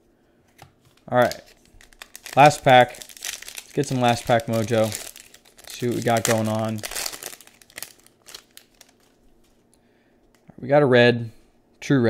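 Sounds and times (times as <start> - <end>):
wrapper crinkling: 0.9 - 9.6.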